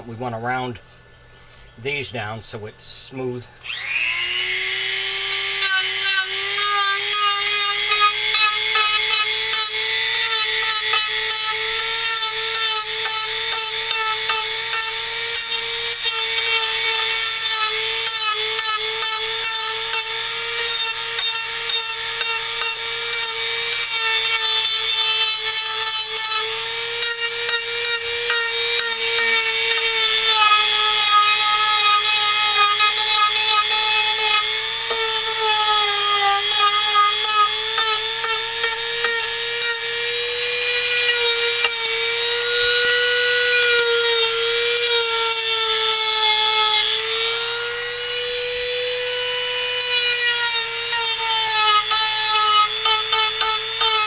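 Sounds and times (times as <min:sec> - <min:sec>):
rotary tool sanding wood: 0:03.6 - 0:54.0.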